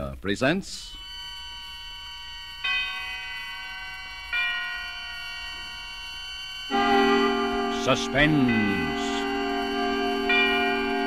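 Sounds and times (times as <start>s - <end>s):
bell-like chimes tolling: 2.6s - 6.1s, 6.7s - 11.0s.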